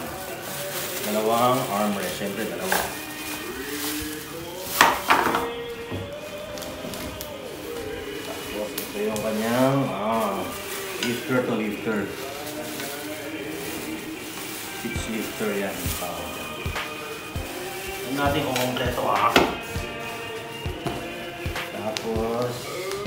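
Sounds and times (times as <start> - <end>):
plastic packaging rustling: 0.0 - 23.0.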